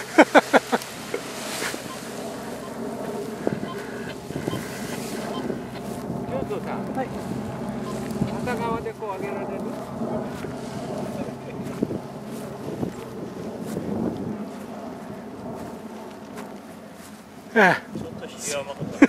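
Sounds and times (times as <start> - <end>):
paramotor engine droning: 0.0 - 19.0
wind noise on microphone: 0.0 - 19.0.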